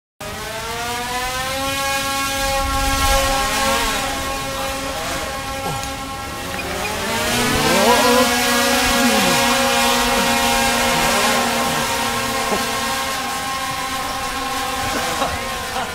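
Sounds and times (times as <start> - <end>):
drone propellers whirring: 0.2 - 15.9.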